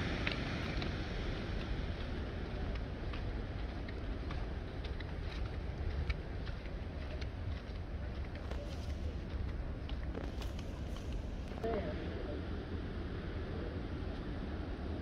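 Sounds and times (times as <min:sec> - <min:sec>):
wind rumbling on microphone: 0:00.0 - 0:15.0
footsteps on paving stones: 0:00.1 - 0:11.6.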